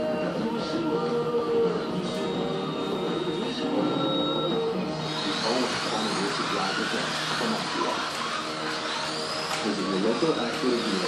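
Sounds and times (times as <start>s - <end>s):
slot car motors whining: 0.0s - 11.0s.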